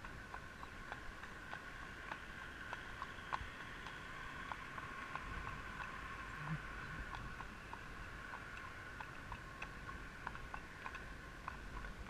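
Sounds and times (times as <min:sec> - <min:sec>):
horse hooves on tarmac: 0:00.0 - 0:12.0.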